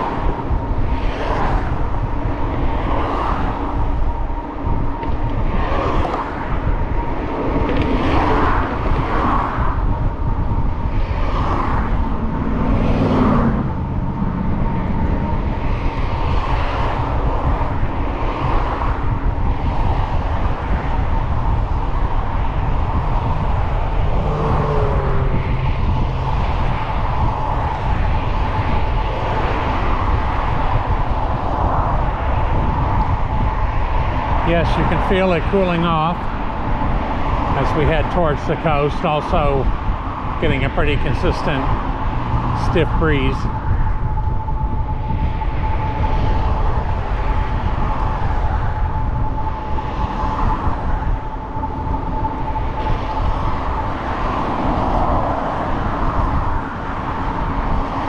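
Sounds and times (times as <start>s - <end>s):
freeway traffic rushing: 0.0s - 58.0s
wind buffeting microphone: 0.0s - 58.0s
thin steady whine: 20.3s - 57.9s.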